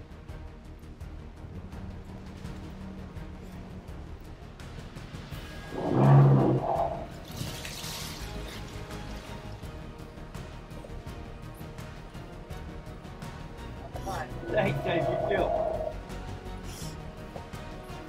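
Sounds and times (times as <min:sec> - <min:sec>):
background music: 0:00.0 - 0:18.0.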